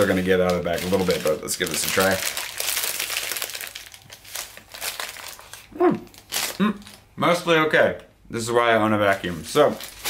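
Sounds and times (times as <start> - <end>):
paper bag crinkling: 0.0 - 7.0, 9.1 - 10.0
paper crackles: 0.0 - 7.0, 9.1 - 10.0.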